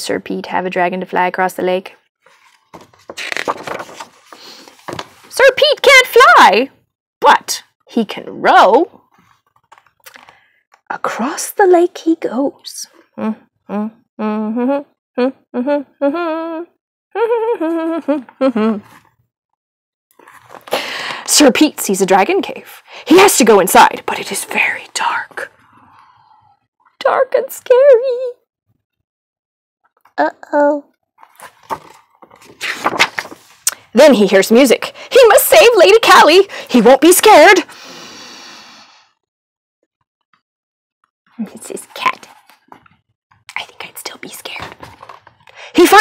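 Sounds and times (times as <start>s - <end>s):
book rustling: 2.2s - 5.4s, 9.1s - 10.4s, 20.2s - 21.2s, 31.2s - 33.7s, 41.8s - 43.0s, 44.5s - 45.5s.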